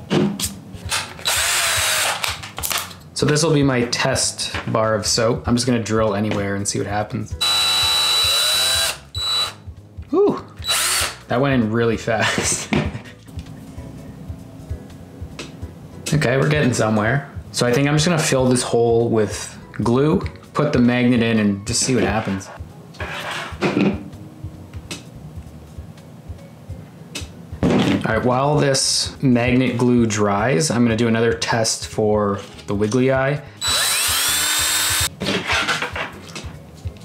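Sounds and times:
soft background music: 0.0s - 37.0s
cordless drill whining: 0.9s - 2.3s, 7.4s - 9.6s, 10.6s - 11.2s, 33.6s - 35.1s.

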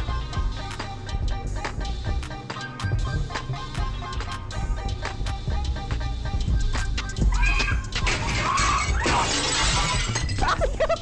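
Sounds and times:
music playing: 0.0s - 11.0s
glass pane shattering: 8.0s - 10.7s.

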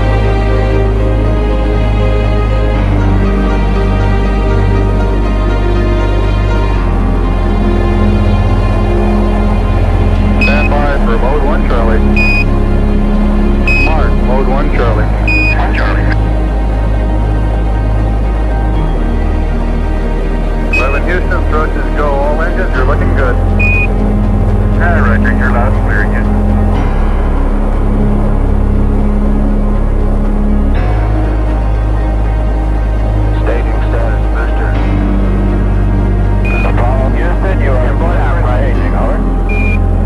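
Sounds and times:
low background music drone: 0.0s - 40.0s
short high beeps: 10.4s - 10.8s, 12.2s - 12.5s, 13.7s - 14.0s, 15.3s - 15.6s, 23.6s - 23.9s, 36.5s - 36.8s, 39.5s - 39.8s
radio voice transmission: 10.4s - 12.4s, 13.7s - 16.2s, 20.8s - 23.4s, 24.8s - 26.3s, 33.3s - 34.8s, 36.5s - 39.3s.

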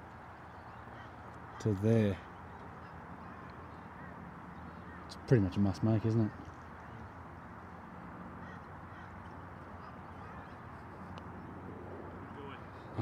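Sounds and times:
faint distant calls: 0.0s - 13.0s.

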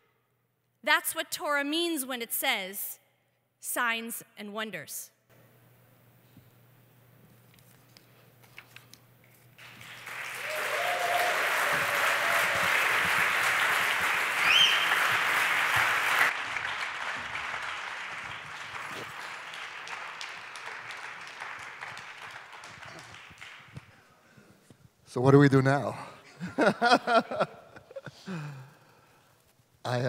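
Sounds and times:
audience applauding: 9.6s - 23.9s.

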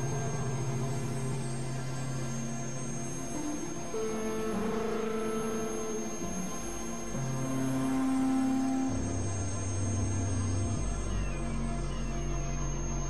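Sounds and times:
dark electronic drone music: 0.0s - 13.0s
thin high whine: 0.0s - 13.0s.

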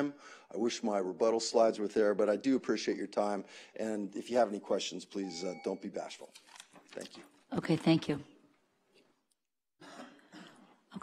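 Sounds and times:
person clearing throat: 9.8s - 10.8s.

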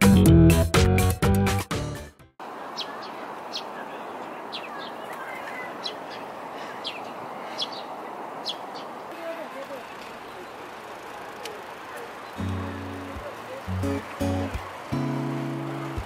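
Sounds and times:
city noise: 2.4s - 16.0s
distant voices murmur: 2.4s - 16.0s
small birds chirping: 2.4s - 16.0s.

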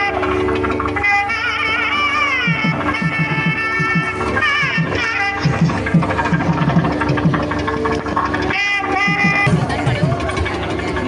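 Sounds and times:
crowd voices: 0.0s - 11.0s
drum strokes: 0.0s - 11.0s
held bending melody note: 0.0s - 11.0s
procession music: 0.0s - 11.0s.

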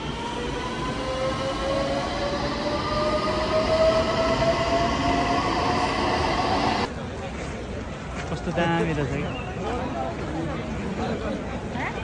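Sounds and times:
rumble of train cars: 0.0s - 8.2s.

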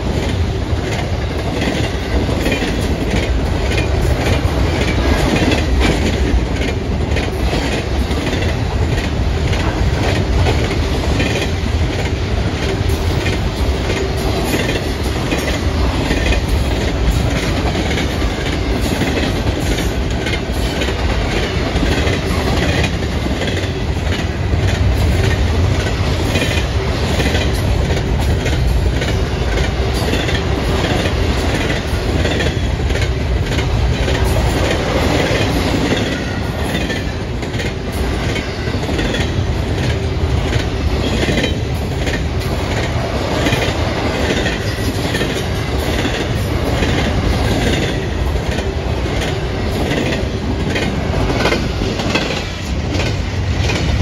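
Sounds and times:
freight train rumbling past: 0.0s - 54.0s
wheels clattering on rails: 0.0s - 54.0s.

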